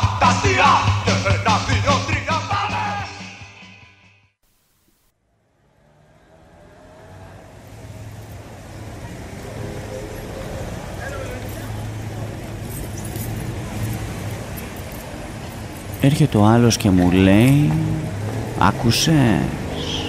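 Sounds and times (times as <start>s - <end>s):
street traffic rumble: 5.2s - 20.0s
faint voices: 8.4s - 20.0s.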